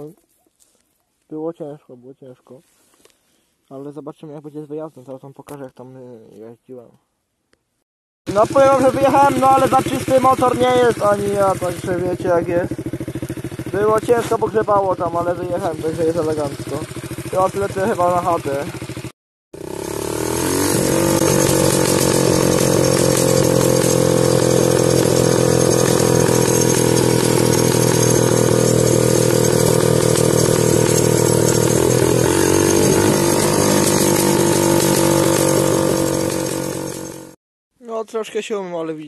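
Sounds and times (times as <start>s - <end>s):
dirt bike engine running: 8.3s - 37.4s.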